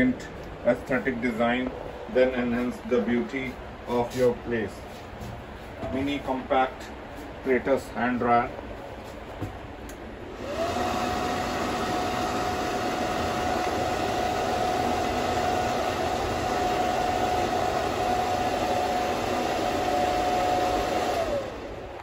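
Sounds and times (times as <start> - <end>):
hand dryer motor whine: 10.2 - 22.0.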